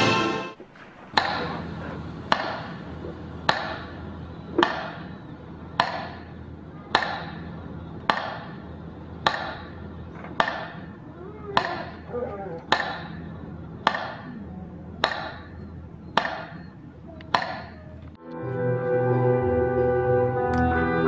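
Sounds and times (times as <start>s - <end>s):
sharp echoing knocks: 0.6s - 17.9s.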